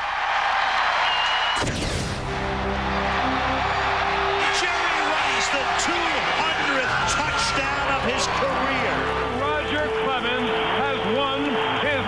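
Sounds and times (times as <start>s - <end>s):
crowd noise: 0.0s - 12.0s
music with held chords: 2.2s - 6.8s.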